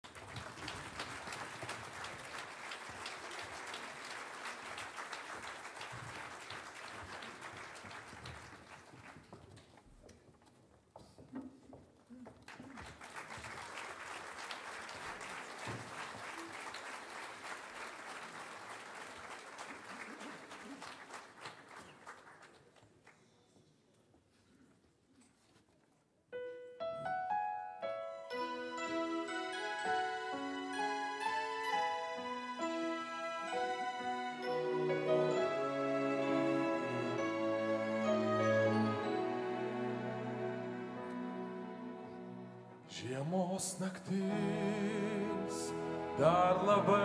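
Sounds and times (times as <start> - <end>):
audience applauding: 0.0 - 9.8, 12.3 - 23.1.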